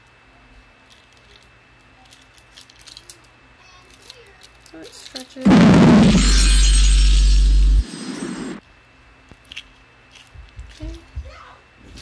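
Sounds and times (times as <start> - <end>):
high hiss-like shimmer: 5.5 - 8.6.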